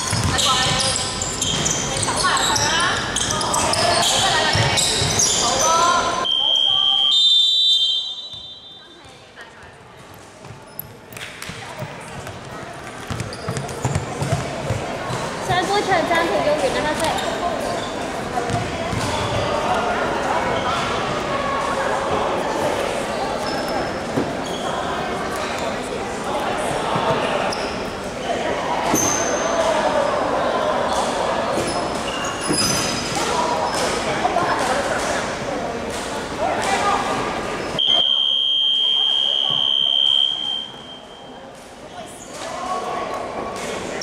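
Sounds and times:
basketball bouncing on wooden floor: 0.1 - 0.4
referee's whistle blast: 6.2 - 9.0, 37.8 - 41.3.

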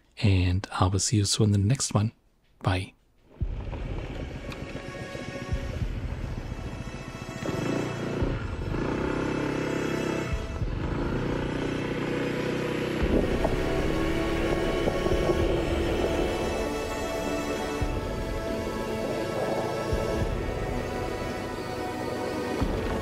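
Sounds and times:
background music with sustained tones: 3.3 - 23.0.

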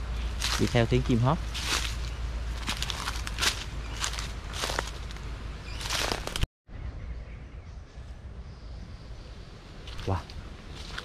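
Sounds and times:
footsteps crunching dry leaves: 0.0 - 6.4, 9.9 - 11.0
faint outdoor background: 0.0 - 11.0.

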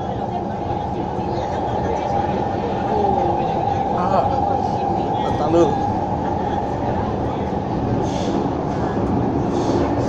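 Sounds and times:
metro train rumble: 0.0 - 10.0
passengers murmuring: 0.0 - 10.0.

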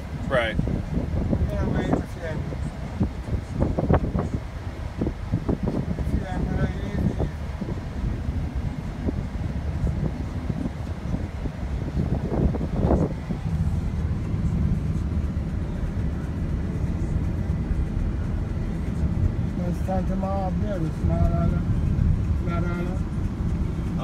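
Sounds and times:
car cabin road and engine rumble: 0.0 - 24.0.

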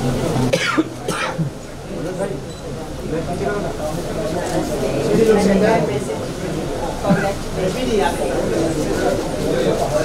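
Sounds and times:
background talk: 0.0 - 10.0.

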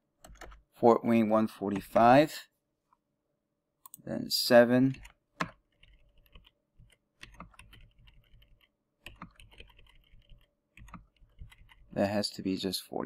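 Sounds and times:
faint keyboard typing: 0.2 - 0.7, 4.8 - 12.1.

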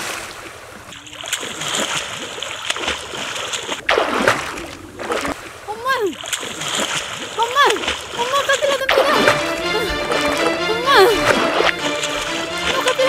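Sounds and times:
water splashing: 0.0 - 13.0
person crying out: 8.8 - 11.4
background music with held tones: 8.9 - 13.0.

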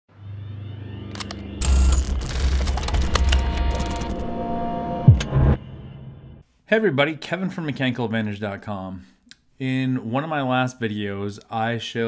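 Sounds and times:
low hum: 0.1 - 6.4.

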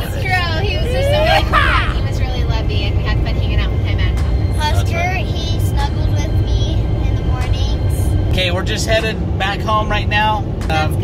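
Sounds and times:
faint voices: 0.0 - 7.0
car cabin road rumble: 0.0 - 11.0.

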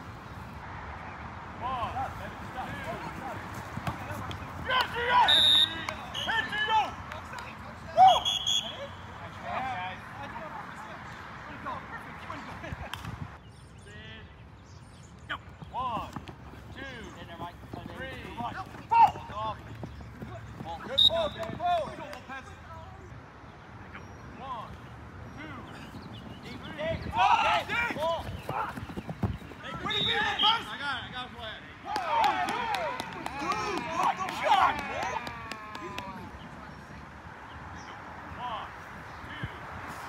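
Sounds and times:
players shouting: 1.6 - 12.7, 15.7 - 23.1, 23.9 - 36.4.

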